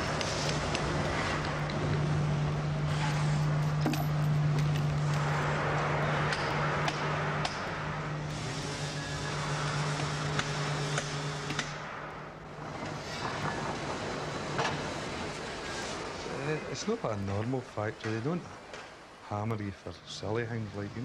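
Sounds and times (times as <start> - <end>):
machinery low hum: 0.0 - 21.0.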